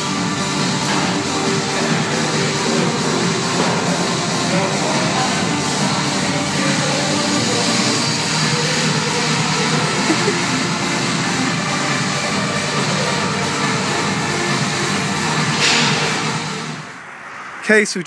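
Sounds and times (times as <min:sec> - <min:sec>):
loud rock music: 0:00.0 - 0:17.0.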